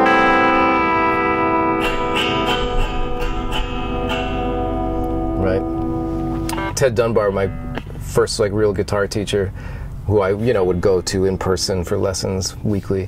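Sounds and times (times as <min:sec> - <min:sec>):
clean electric guitar: 0:00.0 - 0:08.4.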